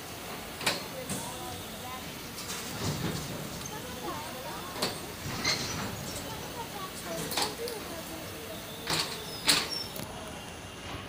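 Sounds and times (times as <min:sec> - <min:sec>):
distant voices: 0:00.0 - 0:11.0
train coaches rolling past: 0:00.0 - 0:11.0.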